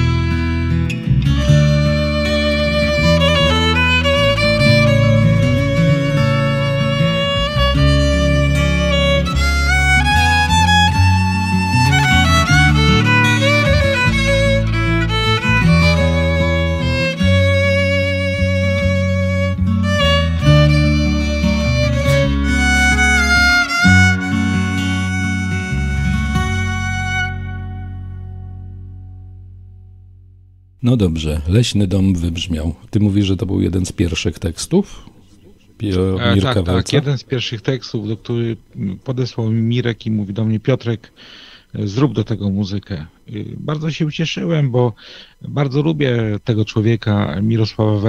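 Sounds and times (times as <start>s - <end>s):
wavering lead melody: 0.0s - 29.5s
bass: 0.0s - 41.0s
guitar: 0.0s - 48.0s.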